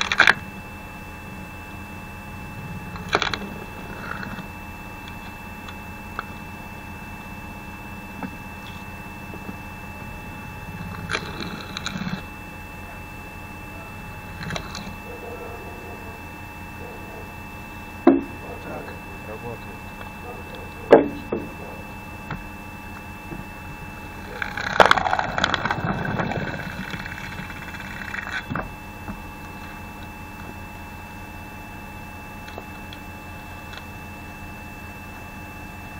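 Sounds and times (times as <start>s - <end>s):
electric motor humming: 0.0s - 33.9s.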